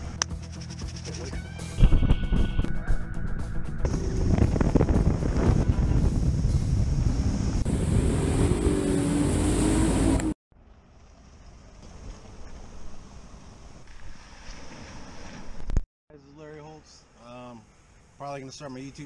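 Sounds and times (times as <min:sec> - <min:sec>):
wind buffeting microphone: 0:01.8 - 0:09.9
water rushing past hull: 0:07.0 - 0:10.4.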